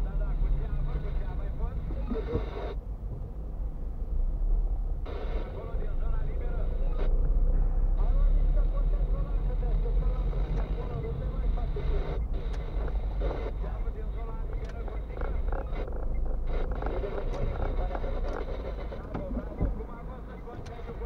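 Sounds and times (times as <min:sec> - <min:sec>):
engine and road rumble: 0:00.0 - 0:21.0
indistinct voices: 0:05.1 - 0:21.0.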